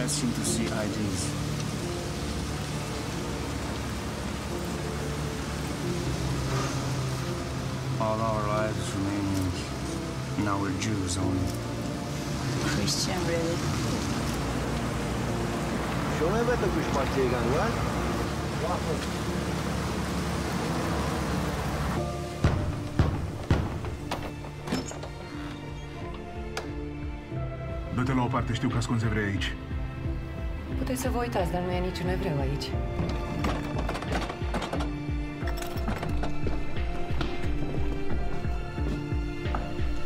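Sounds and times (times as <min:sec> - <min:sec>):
rain on a car roof: 0:00.0 - 0:25.2, 0:31.8 - 0:40.0.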